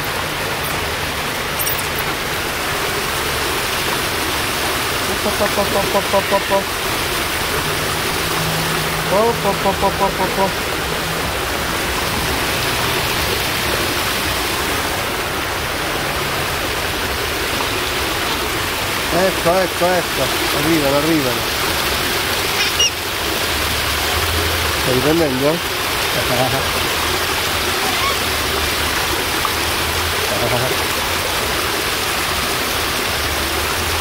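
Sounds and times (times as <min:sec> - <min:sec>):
running water rushing: 0:00.0 - 0:34.0.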